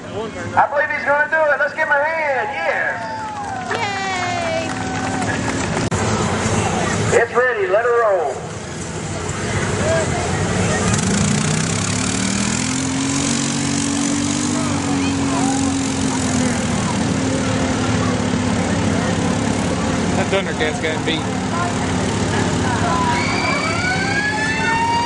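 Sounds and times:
atv engine revving: 2.7 - 25.0.

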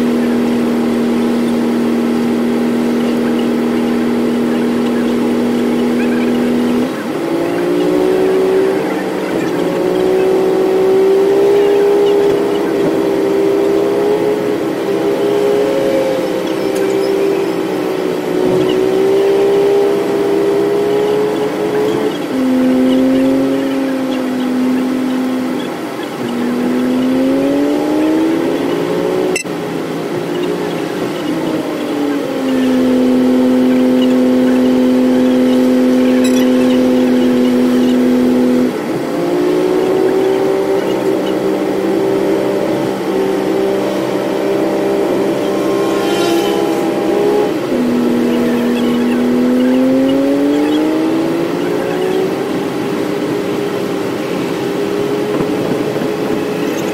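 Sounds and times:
bus engine: 0.0 - 56.9.

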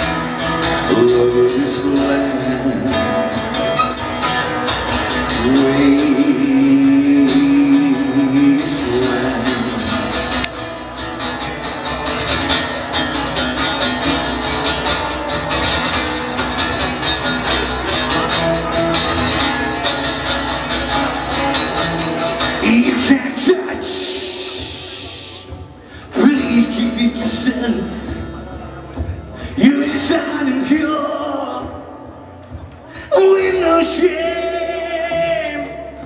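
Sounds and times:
acoustic guitar strumming: 0.0 - 36.0.

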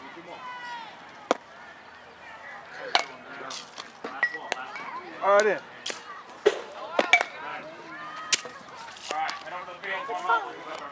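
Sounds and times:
voices talking: 0.0 - 10.9
baseball bat hitting ball: 2.8 - 3.2, 6.4 - 7.4.

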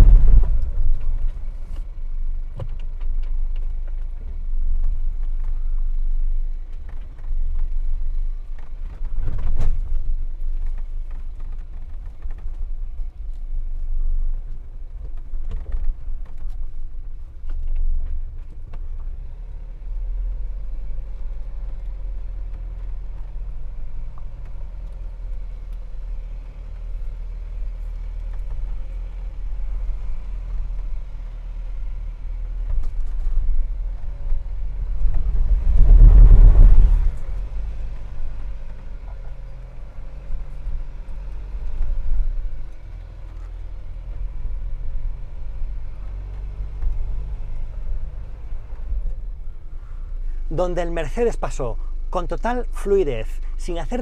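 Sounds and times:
engine running at low revs: 0.0 - 54.0.

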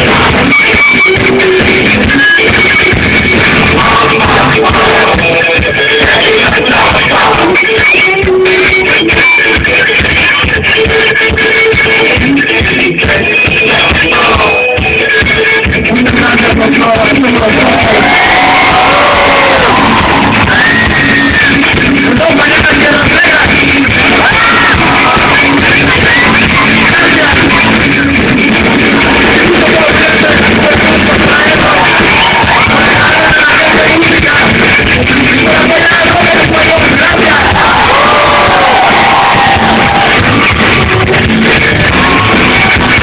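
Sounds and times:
live rock band playing: 0.0 - 43.0
crowd cheering: 17.4 - 43.0.

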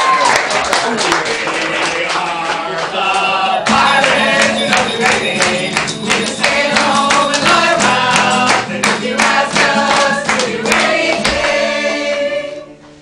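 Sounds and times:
hand clapping: 0.2 - 12.0
acoustic guitar: 1.4 - 13.0
group singing: 1.4 - 13.0.

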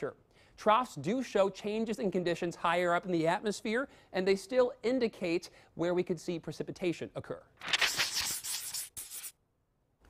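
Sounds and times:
marker scribbling on paper: 7.8 - 9.4.

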